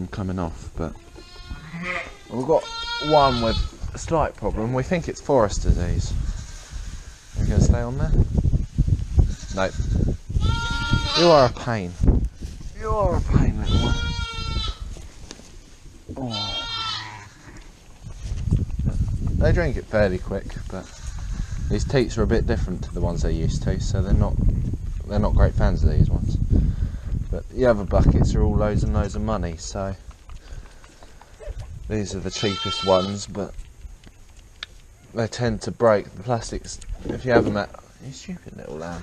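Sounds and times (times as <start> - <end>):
lamb bleating: 1.0 - 3.8, 9.3 - 11.6, 13.6 - 14.9, 16.3 - 17.6, 32.3 - 33.2
hooves knocking: 36.9 - 37.8.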